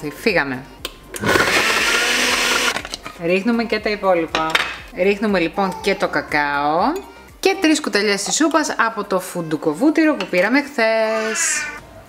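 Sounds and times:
blender running: 1.2s - 2.8s.

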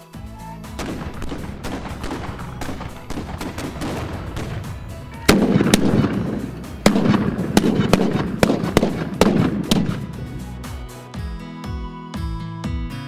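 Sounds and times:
volley of gunshots: 0.8s - 10.3s.

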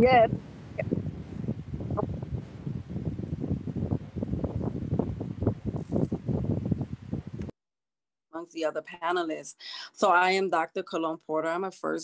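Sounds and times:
electric fan rumbling: 0.0s - 7.5s.

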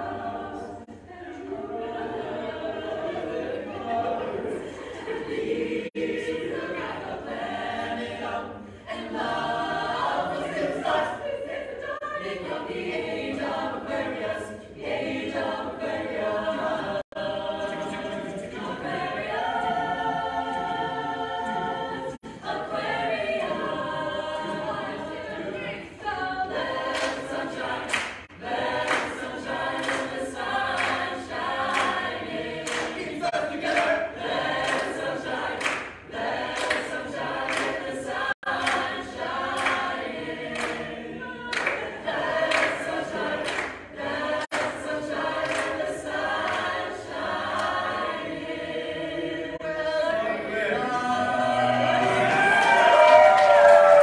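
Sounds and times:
group singing in close harmony: 0.0s - 54.0s
vocal percussion beat: 28.2s - 40.9s.

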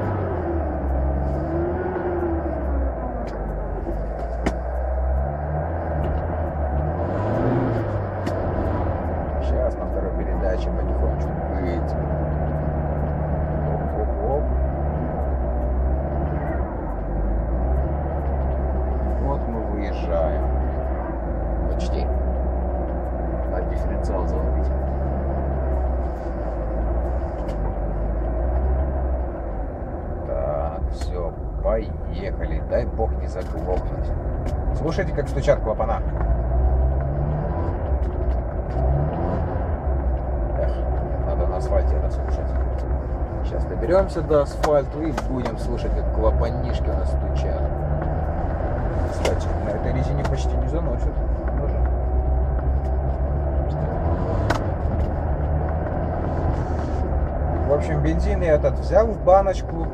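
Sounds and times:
car engine revving roughly: 0.0s - 59.9s.

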